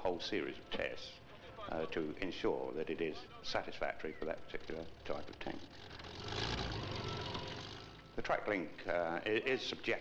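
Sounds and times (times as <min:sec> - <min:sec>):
armoured vehicle engine running: 0:00.0 - 0:08.5.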